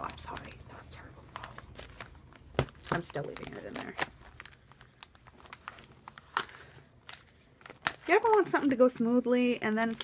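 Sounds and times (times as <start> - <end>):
plastic sleeves crinkling: 0.0 - 10.0.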